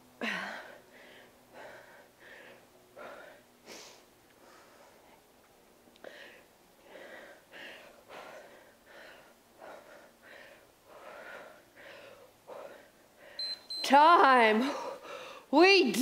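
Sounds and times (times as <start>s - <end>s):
woman breathing heavily: 0.0s - 13.6s, 14.6s - 15.6s
short high beep: 13.4s - 13.9s.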